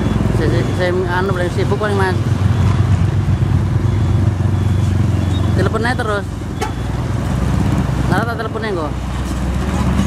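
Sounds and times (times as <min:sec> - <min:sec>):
motorcycle engines passing: 0:00.0 - 0:10.0
truck diesel engine rumbling: 0:00.0 - 0:10.0.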